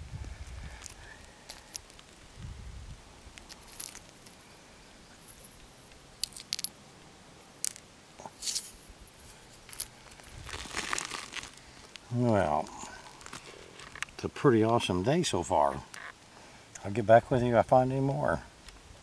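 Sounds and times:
small stones clicking: 0:00.8 - 0:02.2, 0:03.3 - 0:04.4, 0:06.2 - 0:06.8, 0:09.7 - 0:12.0.

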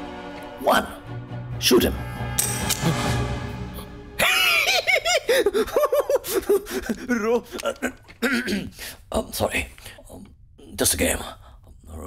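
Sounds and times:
tense film score music: 0:00.0 - 0:12.0
man giggling laugh: 0:04.2 - 0:08.1.

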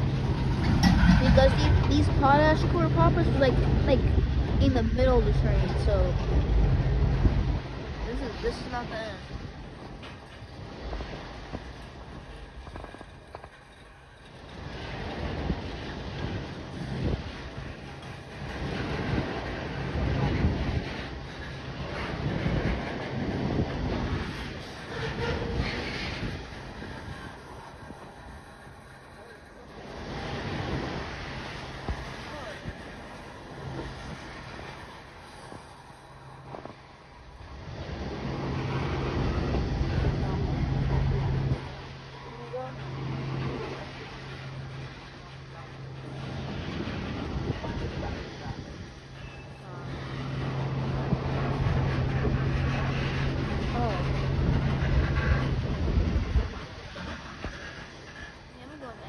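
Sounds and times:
train wheels rumbling on rails: 0:00.0 - 0:59.0
wind on microphone: 0:00.0 - 0:59.0.

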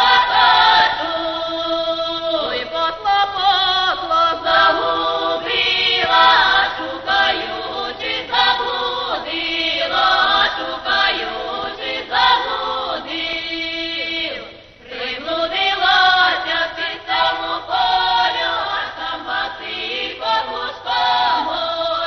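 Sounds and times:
folk choir singing in parts: 0:00.0 - 0:22.0.

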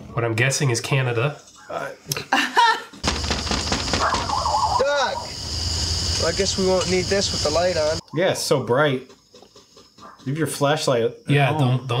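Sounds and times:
voice-like call: 0:03.9 - 0:05.4
low hum with hiss: 0:04.8 - 0:08.0.

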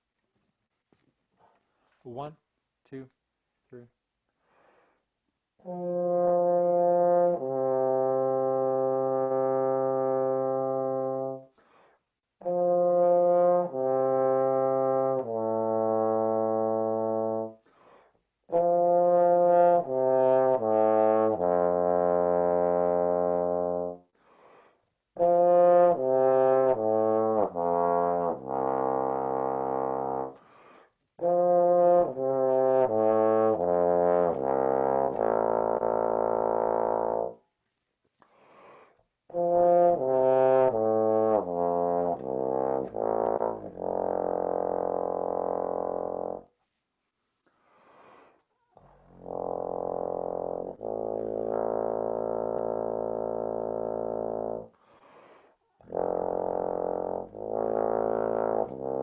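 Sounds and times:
breaths: 0:04.3 - 0:05.2, 0:11.5 - 0:12.2, 0:17.6 - 0:18.3, 0:24.1 - 0:25.0, 0:30.3 - 0:31.1, 0:38.1 - 0:39.2, 0:47.2 - 0:48.8, 0:54.7 - 0:55.8
bass trombone held notes: 0:05.6 - 0:11.5, 0:12.4 - 0:17.6, 0:18.5 - 0:24.0, 0:25.2 - 0:30.4, 0:31.2 - 0:37.4, 0:39.3 - 0:46.5, 0:48.8 - 0:54.7, 0:55.8 - 0:59.0.

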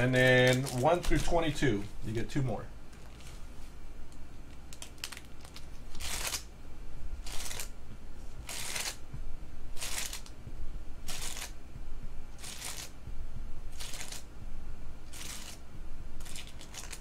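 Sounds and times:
crinkly foil pack swish: 0:16.2 - 0:17.0.

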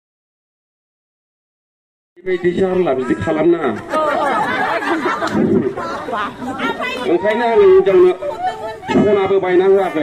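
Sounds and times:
man talking into microphone: 0:02.2 - 0:03.9, 0:07.0 - 0:08.3, 0:08.9 - 0:10.0
chatter of voices: 0:02.3 - 0:10.0.

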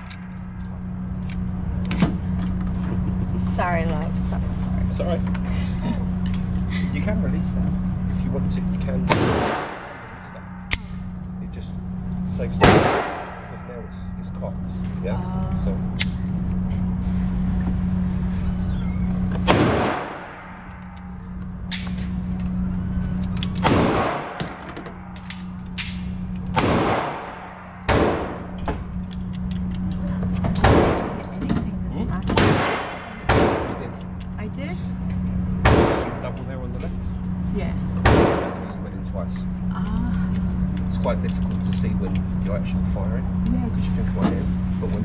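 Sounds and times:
low hum: 0:00.0 - 0:45.0
gunshots with echo: 0:09.1 - 0:10.2, 0:12.6 - 0:13.6, 0:19.5 - 0:20.6, 0:23.6 - 0:24.6, 0:26.6 - 0:28.5.

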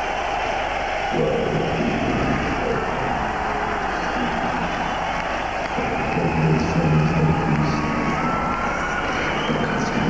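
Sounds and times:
crowd cheering and shouting: 0:00.0 - 0:10.0
low pitched sound from speakers: 0:00.0 - 0:10.0.

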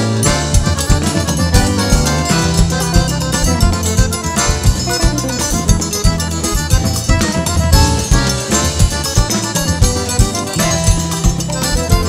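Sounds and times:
accordion playing chords and melody: 0:00.0 - 0:12.0
steady bass drum beat: 0:00.0 - 0:12.0.

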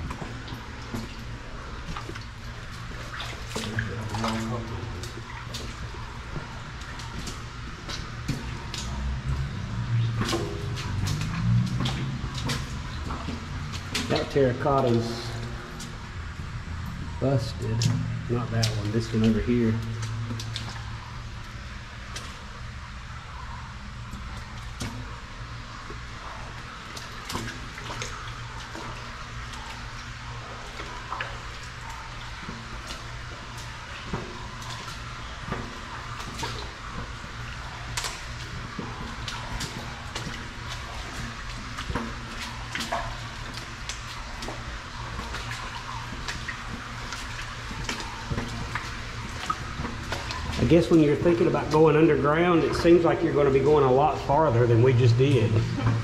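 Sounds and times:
clicks and splashes: 0:00.0 - 0:56.0
low steady rumble: 0:00.0 - 0:56.0
water rushing through culvert: 0:00.0 - 0:56.0.

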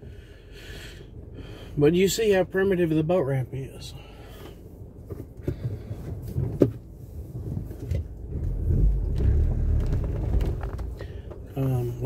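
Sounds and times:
vehicle rumbling over rough ground: 0:05.0 - 0:12.0.

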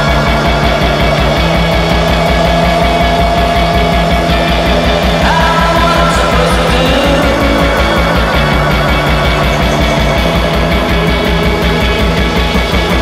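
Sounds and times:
instrumental rock band playing: 0:00.0 - 0:13.0.

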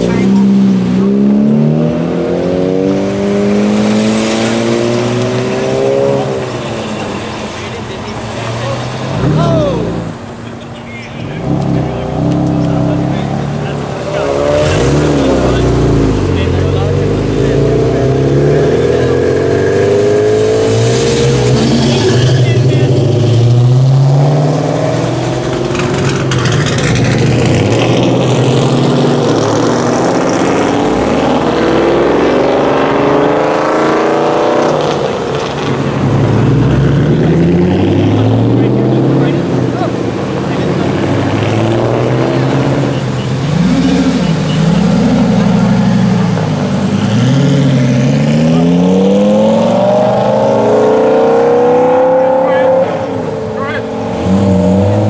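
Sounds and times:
sports cars revving past: 0:00.0 - 0:55.0.

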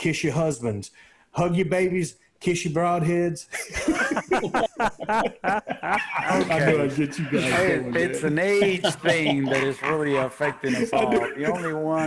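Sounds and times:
men laughing hard: 0:03.5 - 0:12.0.

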